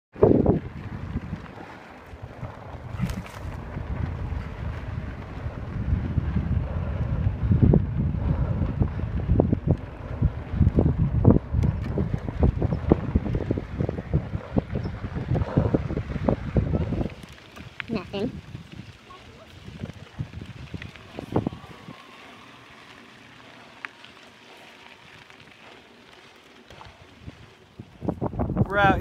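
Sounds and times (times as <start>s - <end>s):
wind buffeting microphone: 0.1s - 29.0s
bike knocking and rattling: 0.2s - 29.0s.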